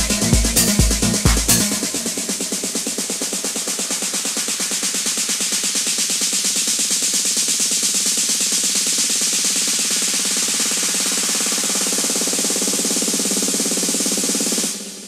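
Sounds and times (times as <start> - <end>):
fast electronic drum roll: 0.0 - 15.0.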